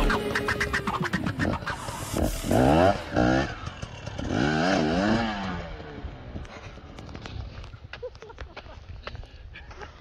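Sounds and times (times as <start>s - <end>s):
two-stroke dirt bike engine revving: 0.0s - 6.4s.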